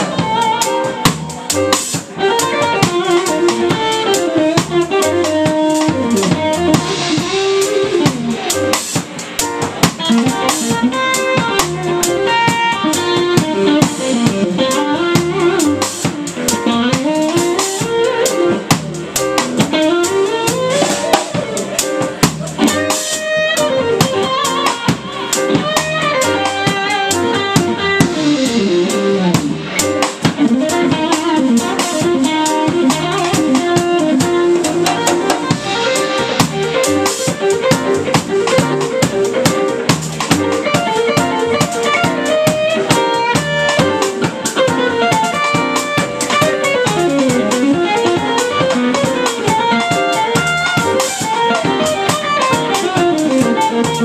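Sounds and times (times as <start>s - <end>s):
drum kit with cymbals and snare: 0.0s - 54.0s
electric guitar solo: 0.0s - 54.0s
upright bass: 0.0s - 54.0s.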